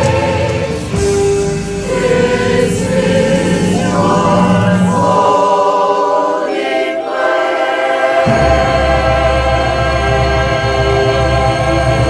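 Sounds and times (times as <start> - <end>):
mixed choir singing a hymn: 0.0 - 12.0.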